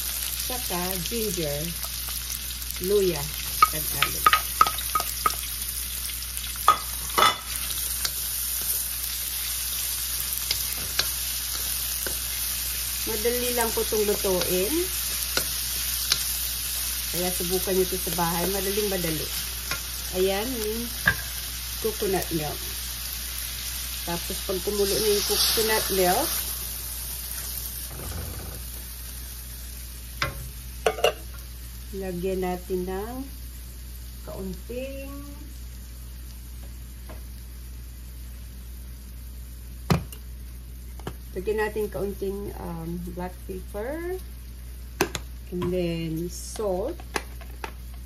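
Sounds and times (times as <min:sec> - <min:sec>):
onions sizzling in a wok: 0:00.0 - 0:48.0.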